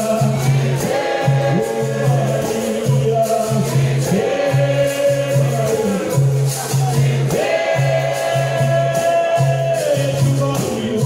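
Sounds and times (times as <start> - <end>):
group singing: 0.0 - 11.0.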